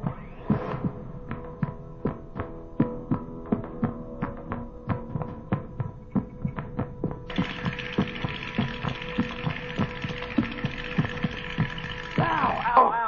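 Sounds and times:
electronic hum with throbbing pulse: 0:05.9 - 0:12.8.

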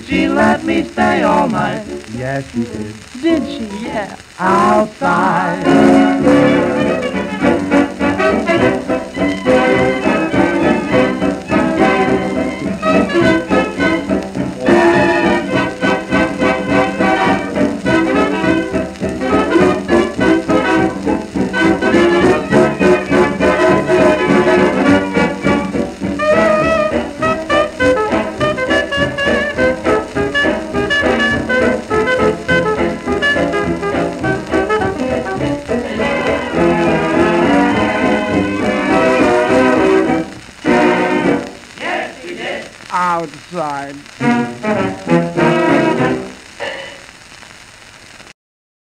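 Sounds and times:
dance orchestra with brass: 0:05.6 - 0:41.6, 0:44.2 - 0:46.4.

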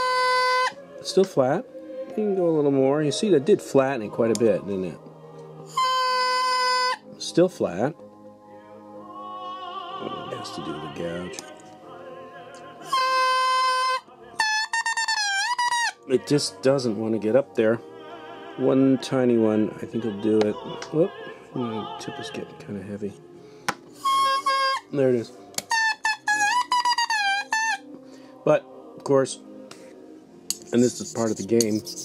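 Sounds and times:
faint classical singing recording: 0:00.0 - 0:14.8, 0:15.9 - 0:24.0, 0:27.4 - 0:32.0.

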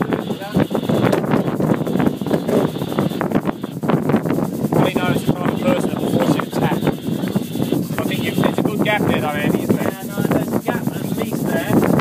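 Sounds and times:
indistinct voices: 0:00.0 - 0:12.0
water rushing along hull: 0:00.0 - 0:12.0
wind on microphone: 0:00.0 - 0:12.0.

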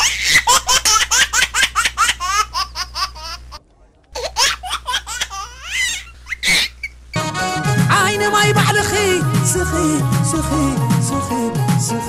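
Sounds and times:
high-pitched laughter: 0:04.2 - 0:07.1.

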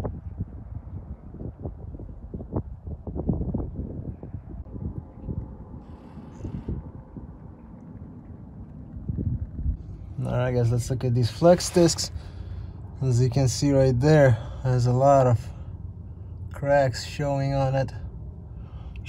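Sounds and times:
wind buffeting microphone: 0:00.0 - 0:14.2.

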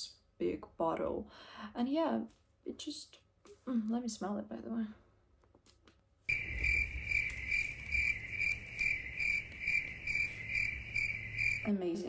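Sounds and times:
cricket chirping: 0:06.3 - 0:11.8.

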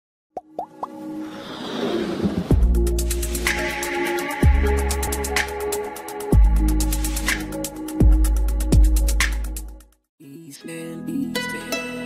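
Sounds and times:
quick rising pops: 0:00.4 - 0:02.6
whoosh: 0:01.2 - 0:03.7.

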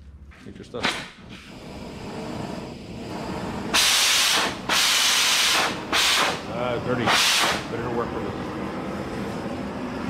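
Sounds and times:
cutting torch gas hissing: 0:01.1 - 0:10.0.

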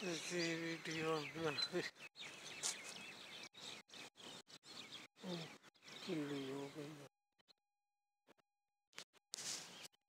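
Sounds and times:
bird chirps: 0:00.0 - 0:07.1.

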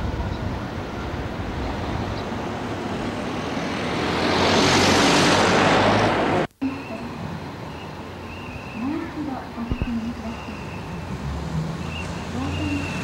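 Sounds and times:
vehicle passing close by: 0:00.0 - 0:06.5, 0:10.3 - 0:13.0
road traffic hum: 0:00.0 - 0:13.0.

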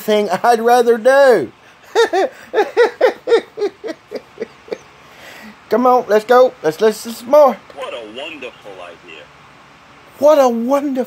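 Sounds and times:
man laughing: 0:01.6 - 0:05.0.

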